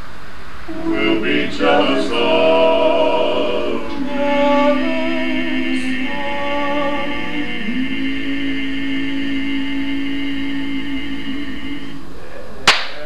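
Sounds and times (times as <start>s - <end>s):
male quartet singing a cappella: 0.7s - 12.3s.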